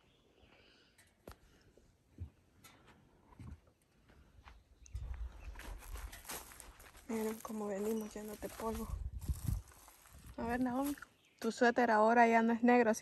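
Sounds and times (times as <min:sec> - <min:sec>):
low rumble: 0:08.6 - 0:10.6.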